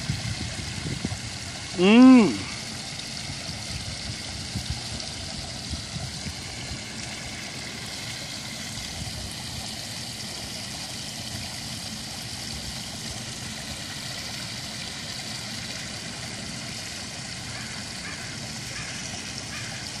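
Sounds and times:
fountain splashing into basin: 0.0 - 20.0.

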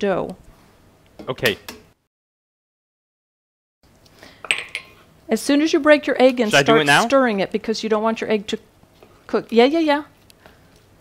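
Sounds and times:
kitchenware clattering against pot: 4.5 - 5.0.

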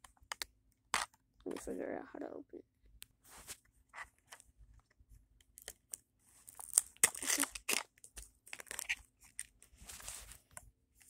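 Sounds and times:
plastic wrapper crinkling: 5.5 - 10.6.

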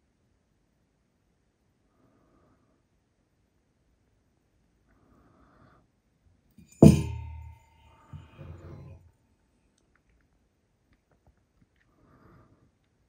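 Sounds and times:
glass tube clinking: 6.6 - 9.0
handling noise: 6.6 - 9.0.

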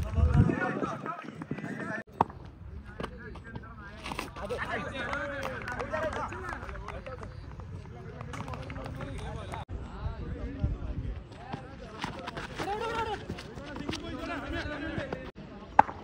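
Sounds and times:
voices calling and chattering: 0.0 - 16.0.

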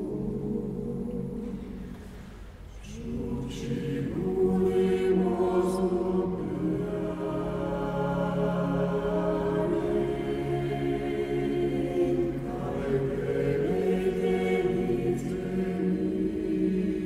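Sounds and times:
choir singing a cappella: 0.0 - 17.0.

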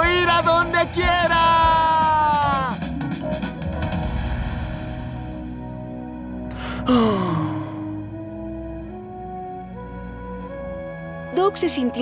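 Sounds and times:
soft background music: 0.0 - 12.0
heavy sigh: 6.5 - 8.0.

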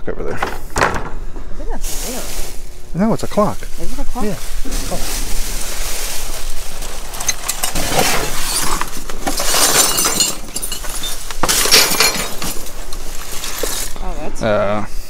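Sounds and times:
broken glass shards clinking: 6.8 - 14.0.

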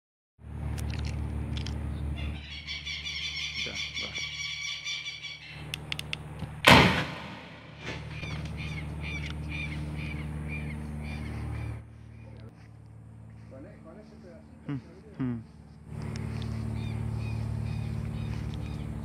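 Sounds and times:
steady low rumble: 0.4 - 19.0
birds chirping: 1.7 - 6.2, 7.8 - 19.0
ejection charge bang: 6.6 - 8.1.

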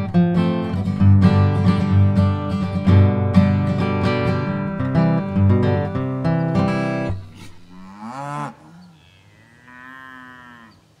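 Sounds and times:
cows mooing: 7.0 - 10.8.

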